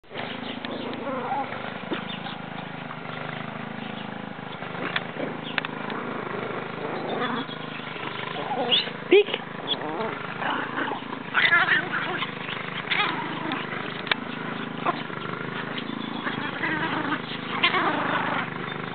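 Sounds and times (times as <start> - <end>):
small dogs growling and yipping: 0.1 - 18.9
dog yelping: 0.8 - 1.6, 6.7 - 14.0, 14.7 - 18.6.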